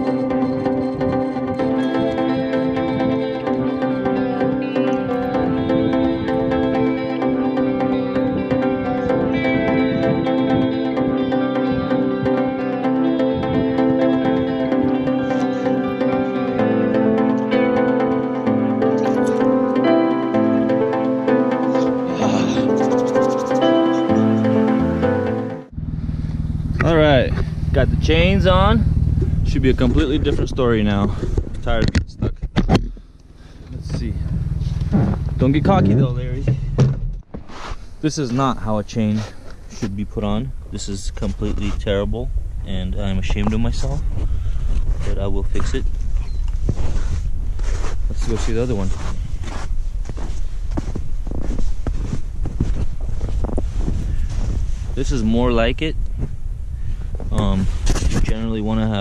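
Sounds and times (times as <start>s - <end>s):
background music: 0.0s - 25.8s
car engine running: 0.0s - 37.3s, 38.2s - 59.0s
wind buffeting microphone: 7.9s - 12.6s, 13.3s - 15.2s, 26.8s - 32.6s, 39.0s - 59.0s
man talking: 22.1s - 22.8s, 26.8s - 32.4s, 33.7s - 34.3s, 35.4s - 36.6s, 38.0s - 44.1s, 45.0s - 45.9s, 48.1s - 49.1s, 55.0s - 56.0s, 57.3s - 59.0s
footsteps in snow: 37.4s - 37.9s, 45.8s - 55.1s.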